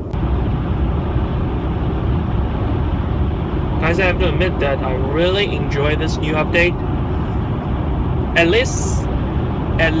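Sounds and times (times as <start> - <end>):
road and wind noise in car: 0.0 - 10.0.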